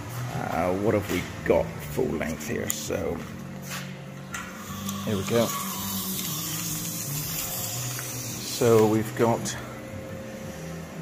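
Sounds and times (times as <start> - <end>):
steady low hum: 0.0 - 11.0
tape measure scraping on metal: 4.6 - 9.5.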